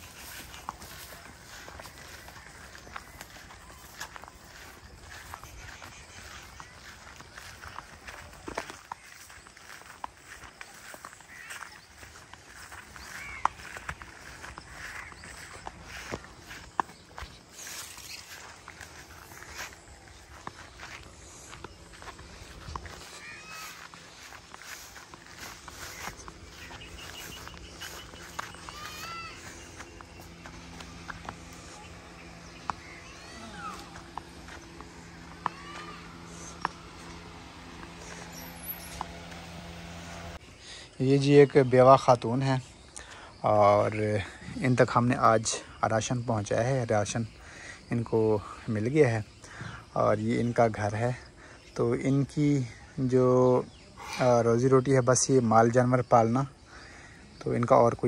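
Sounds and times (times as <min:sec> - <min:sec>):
rustling grass and fronds: 0:00.0 - 0:43.0
bird chirps: 0:00.0 - 0:52.1
footsteps through tall grass: 0:00.0 - 0:56.4
steady low hum: 0:00.0 - 0:58.0.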